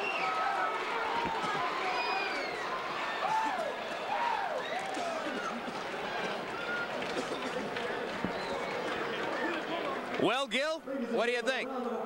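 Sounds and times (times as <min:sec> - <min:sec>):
crowd shouting and talking: 0:00.0 - 0:12.0.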